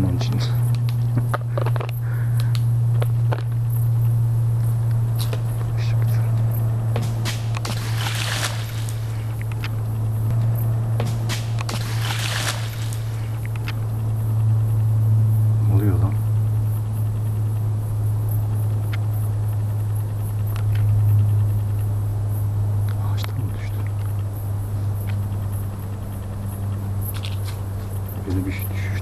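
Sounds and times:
leaves rustling: 0:00.0 - 0:29.0
steady low hum: 0:00.0 - 0:29.0
footsteps through leafy undergrowth: 0:07.0 - 0:09.4, 0:11.0 - 0:13.4.

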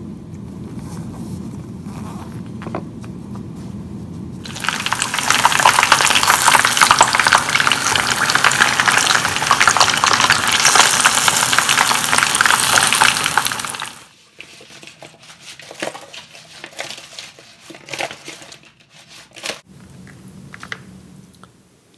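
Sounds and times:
chicken deep-frying in hot oil: 0:04.4 - 0:14.2.

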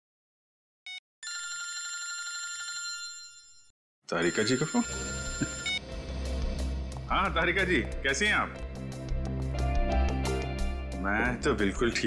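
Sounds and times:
mobile phone ringing: 0:00.9 - 0:05.8
phone ringtone blip: 0:04.2 - 0:05.8.

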